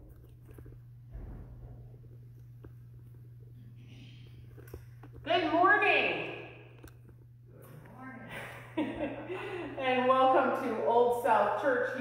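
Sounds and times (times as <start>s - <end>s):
steady low hum: 0.0s - 12.0s
woman's voice echoing: 5.2s - 6.8s, 9.5s - 12.0s.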